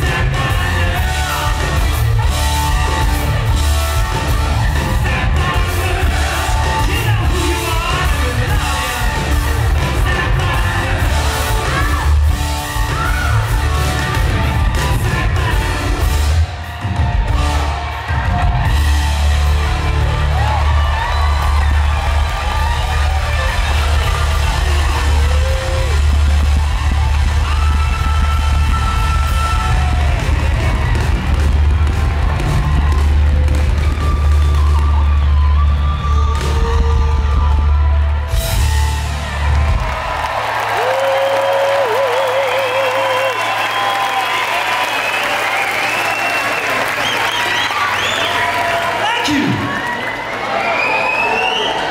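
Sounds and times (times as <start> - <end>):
live rock band holding chord: 0.0 - 40.8
audience cheering and shouting: 0.0 - 51.9.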